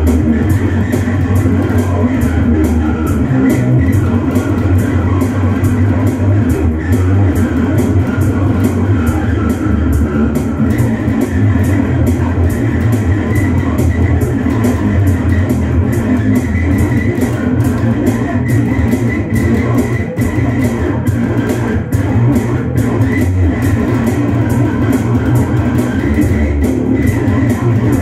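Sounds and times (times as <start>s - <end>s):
backing guitar: 0.0s - 28.0s
drums and cymbals: 0.0s - 28.0s
fingered electric bass guitar: 0.0s - 28.0s.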